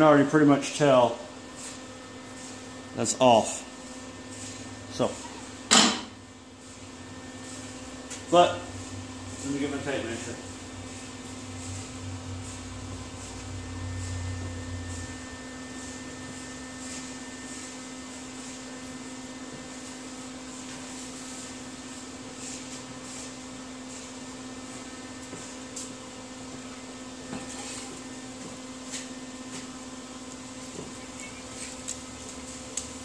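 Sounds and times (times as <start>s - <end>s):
machine hum: 0.0s - 33.0s.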